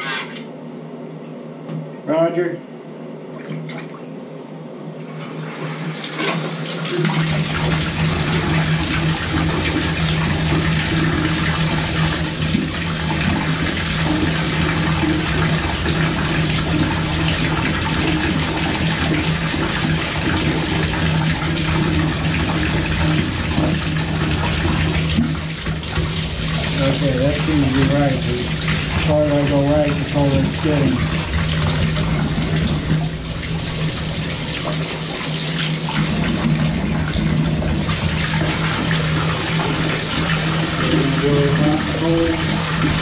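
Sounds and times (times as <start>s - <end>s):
water jetting into bathtub: 3.3s - 4.1s, 5.0s - 43.0s.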